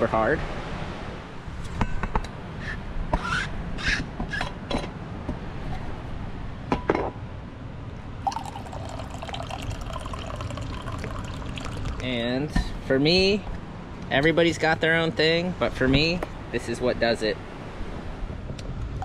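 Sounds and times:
coffee pouring into a cup: 0:08.2 - 0:12.2.

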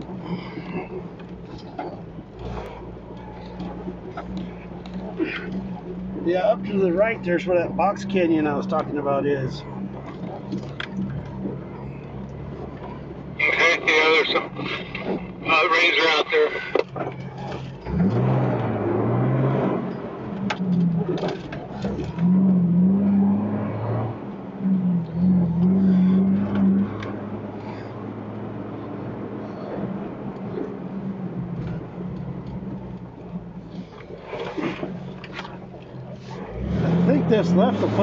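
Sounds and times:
car engine running: 0:00.0 - 0:38.0.

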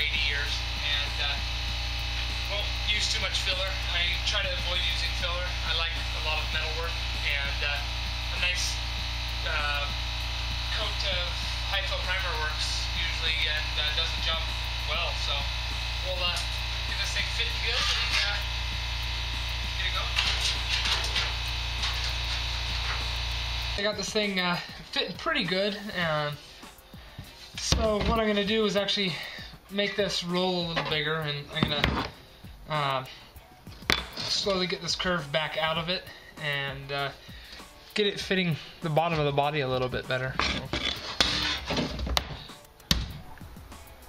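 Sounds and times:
low electrical hum: 0:00.0 - 0:37.2
metal panel scraping and tapping: 0:40.4 - 0:42.3.

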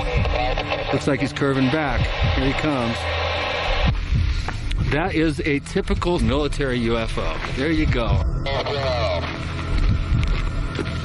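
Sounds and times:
low electronic hum: 0:00.0 - 0:11.0
low throbbing pulses: 0:00.0 - 0:11.0.

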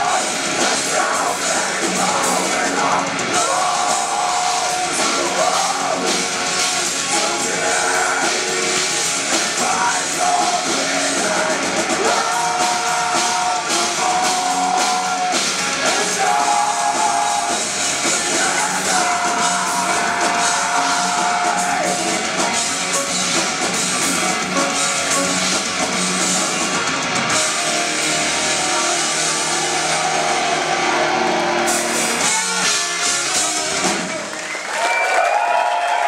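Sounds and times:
bass guitar: 0:00.0 - 0:34.7
distorted electric guitars: 0:00.0 - 0:34.7
drums: 0:00.0 - 0:36.0.

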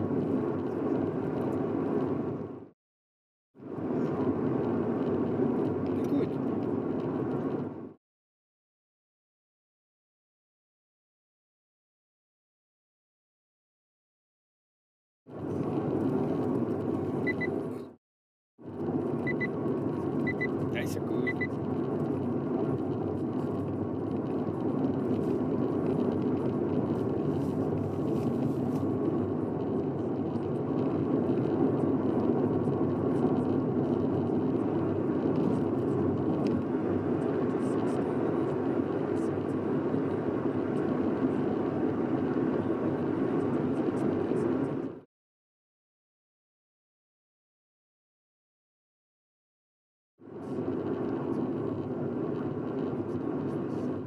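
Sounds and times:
tyres on highway: 0:00.0 - 0:02.8, 0:03.6 - 0:08.0, 0:15.3 - 0:18.0, 0:18.6 - 0:45.1, 0:50.2 - 0:54.0
car engine running: 0:18.7 - 0:45.0.

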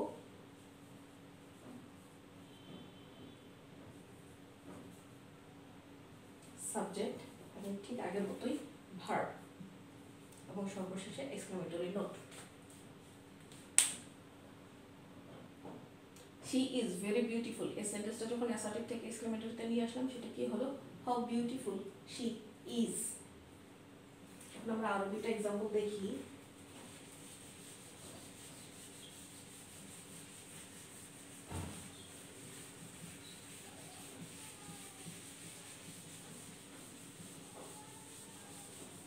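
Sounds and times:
eraser rubbing on whiteboard: 0:26.4 - 0:39.0
short thump: 0:31.5 - 0:31.9.

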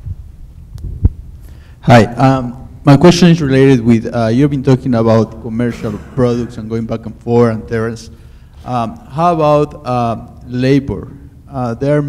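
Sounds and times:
microphone handling thumps: 0:00.0 - 0:01.5
person speaking into microphone: 0:01.8 - 0:12.0.

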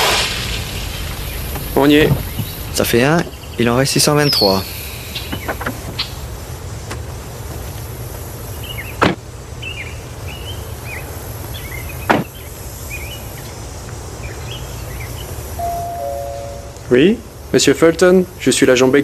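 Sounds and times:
car doors slamming: 0:00.0 - 0:03.2
steady low rumble: 0:00.0 - 0:08.8
birds chirping: 0:00.4 - 0:17.8.

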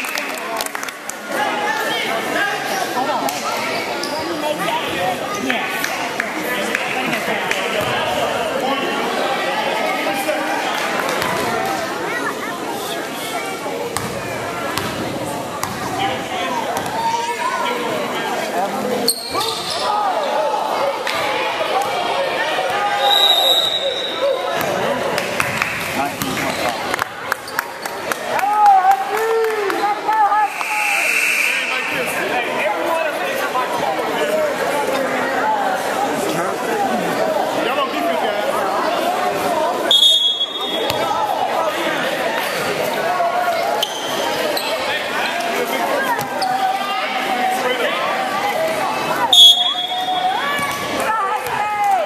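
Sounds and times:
echoing voices and chatter: 0:00.0 - 0:52.0.

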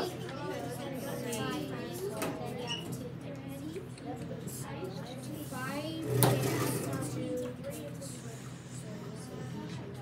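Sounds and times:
children talking quietly: 0:00.0 - 0:10.0.

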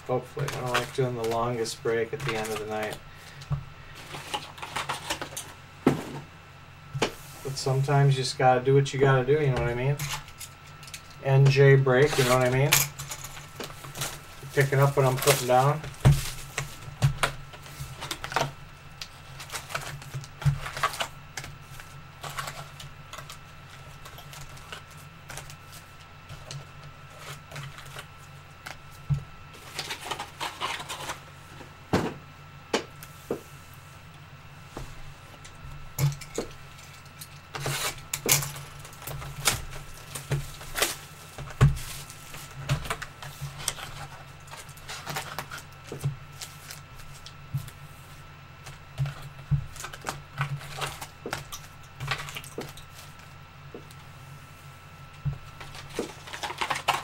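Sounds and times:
cardboard and foil packs crinkling: 0:00.0 - 0:05.6, 0:09.0 - 0:31.4, 0:35.4 - 0:54.0, 0:54.8 - 0:57.0
steady low hum: 0:00.0 - 0:57.0.

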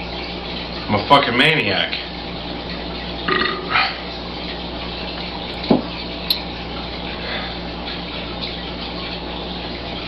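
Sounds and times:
man burping: 0:03.3 - 0:04.0.

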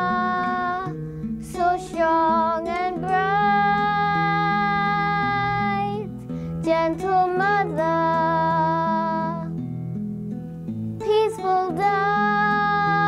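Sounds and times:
child singing: 0:00.0 - 0:09.5, 0:11.0 - 0:13.0.

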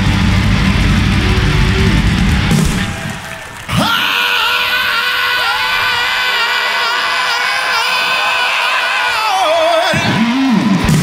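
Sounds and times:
band music: 0:00.0 - 0:04.5, 0:08.1 - 0:11.0.

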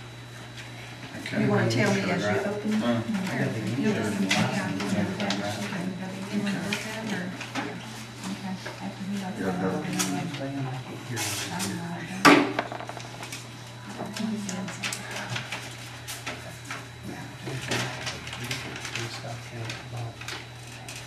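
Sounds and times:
low room hum: 0:00.0 - 0:21.0
sharp knock on table: 0:12.3 - 0:13.2.

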